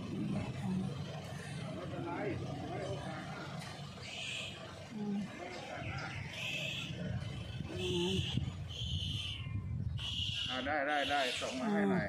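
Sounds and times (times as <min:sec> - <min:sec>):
low rumble: 0:00.0 - 0:03.9
birds calling: 0:03.2 - 0:12.0.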